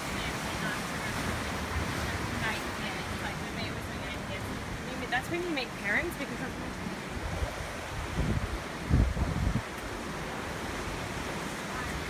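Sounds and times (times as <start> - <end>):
ocean surf washing on rocks: 0.0 - 12.0
wind buffeting microphone: 0.0 - 12.0.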